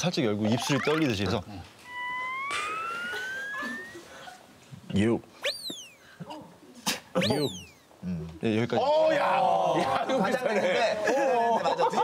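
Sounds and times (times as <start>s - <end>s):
electronic tone rising in pitch: 0.5s - 4.2s, 5.4s - 6.0s, 7.2s - 7.8s.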